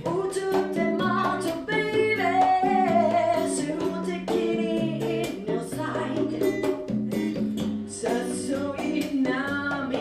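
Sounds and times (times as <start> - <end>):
guitar accompaniment: 0.0 - 10.0
woman singing into microphone: 0.0 - 10.0.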